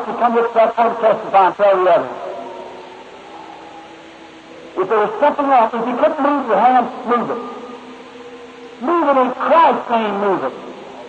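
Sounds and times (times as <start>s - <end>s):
preacher's voice echoing in hall: 0.0s - 2.7s, 4.6s - 11.0s
tape hiss: 0.0s - 11.0s.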